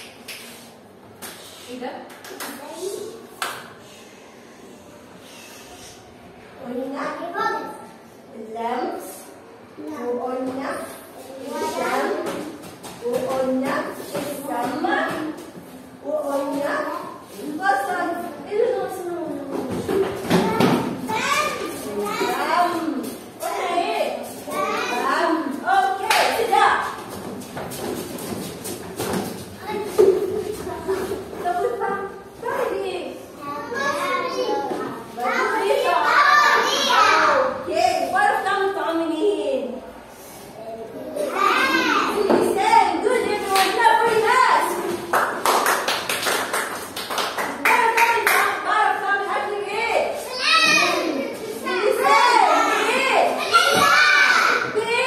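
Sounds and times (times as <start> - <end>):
young children talking and calling out: 11.1 - 12.6, 20.2 - 26.7, 33.2 - 38.4, 39.1 - 45.0, 47.7 - 55.0
children calling out: 35.4 - 37.6, 50.2 - 55.0
children clapping hands: 45.0 - 48.6.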